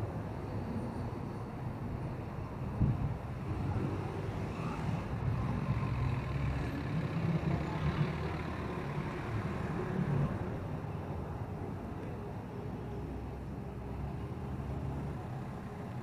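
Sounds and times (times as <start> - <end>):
street traffic: 0.0 - 16.0.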